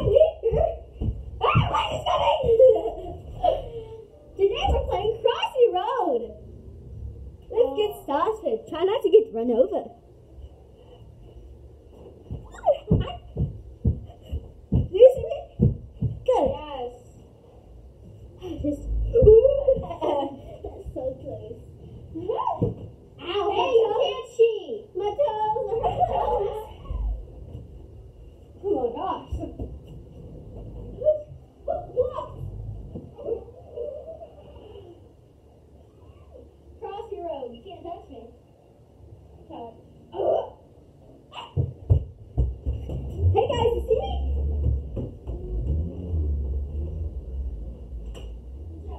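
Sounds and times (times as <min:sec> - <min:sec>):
running footsteps on floor: 0:00.0 - 0:02.9, 0:11.9 - 0:16.6
dull low thumps: 0:00.0 - 0:03.5, 0:18.6 - 0:20.0, 0:42.0 - 0:48.9
girls giggling: 0:00.0 - 0:04.3, 0:12.3 - 0:14.8, 0:18.4 - 0:21.2, 0:25.5 - 0:27.2.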